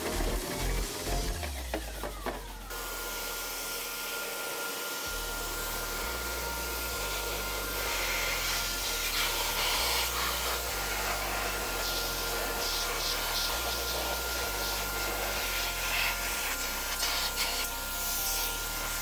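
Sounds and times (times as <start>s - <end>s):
pressure washer spray hissing: 3.1s - 19.0s.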